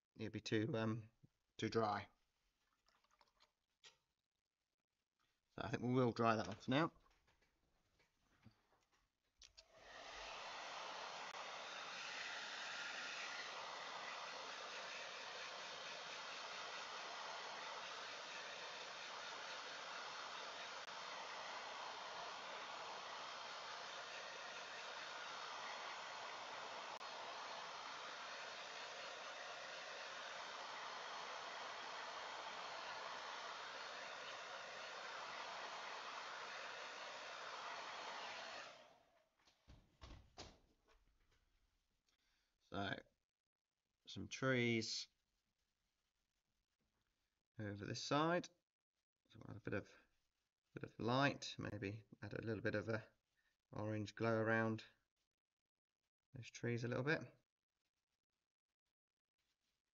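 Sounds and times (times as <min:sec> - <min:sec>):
hair dryer blowing: 0:09.6 - 0:39.2.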